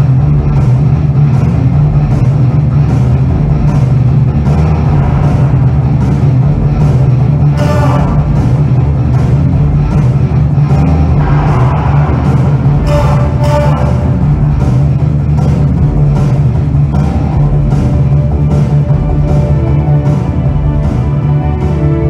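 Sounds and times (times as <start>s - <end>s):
regular percussion beat: 0.0s - 22.0s
sustained heavy bass: 0.0s - 22.0s
orchestra playing dark passage: 4.0s - 22.0s.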